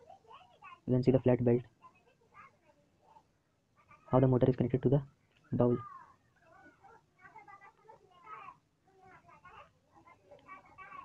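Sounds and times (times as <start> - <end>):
faint voice-like sounds: 0.0 - 11.0.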